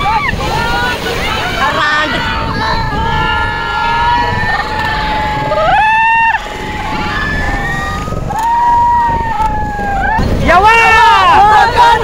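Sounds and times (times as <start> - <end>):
people shouting: 0.0 - 12.0
surf washing: 0.0 - 12.0.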